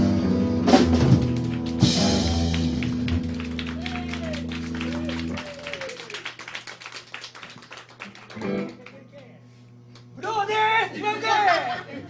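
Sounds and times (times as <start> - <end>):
small audience clapping: 0.9 - 9.4.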